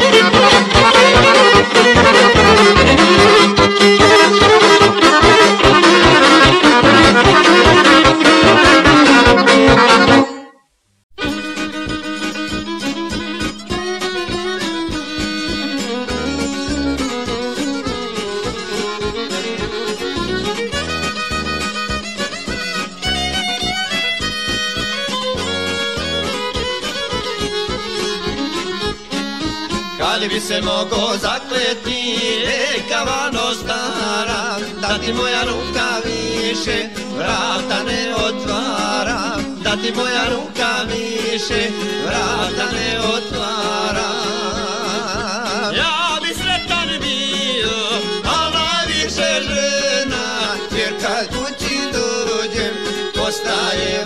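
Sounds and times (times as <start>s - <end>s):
fast strummed lute: 0.0s - 10.4s, 11.2s - 54.0s
instrumental folk music: 0.0s - 54.0s.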